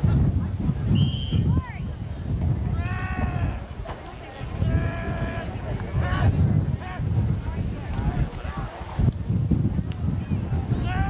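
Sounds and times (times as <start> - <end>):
wind rumbling on microphone: 0.0 - 11.0
short high whistle: 1.0 - 1.5.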